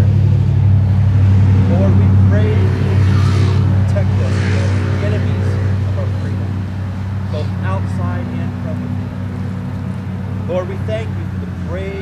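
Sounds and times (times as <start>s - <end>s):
car passing: 0.0s - 12.0s
engine idling: 0.0s - 12.0s.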